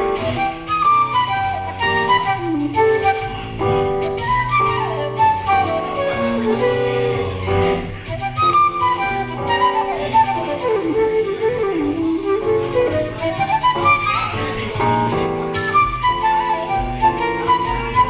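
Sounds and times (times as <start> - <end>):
flute melody with slides: 0.0 - 18.0
low accompaniment: 0.0 - 18.0.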